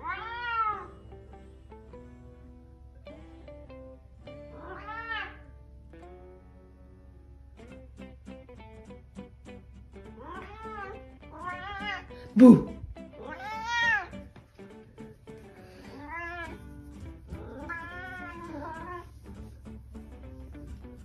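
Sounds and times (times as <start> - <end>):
cat meowing: 0.0 - 1.2, 4.4 - 5.5, 10.1 - 14.3, 15.7 - 19.1
plucked guitar music: 0.0 - 21.0.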